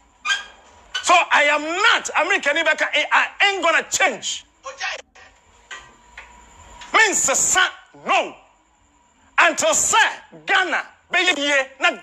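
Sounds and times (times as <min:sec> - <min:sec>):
man speaking loudly: 0:01.0 - 0:05.0, 0:06.9 - 0:08.5, 0:09.4 - 0:12.0.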